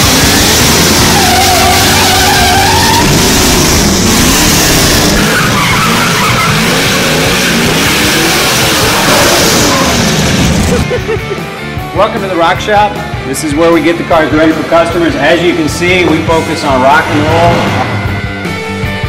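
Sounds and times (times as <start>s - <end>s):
tyres squealing: 0.0s - 10.8s
car engines revving: 0.0s - 10.9s, 13.8s - 19.0s.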